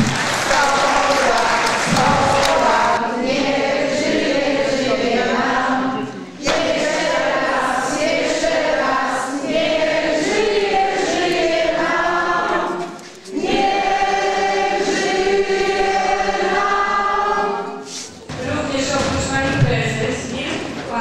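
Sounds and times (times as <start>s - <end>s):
group of people singing: 0.0s - 20.2s.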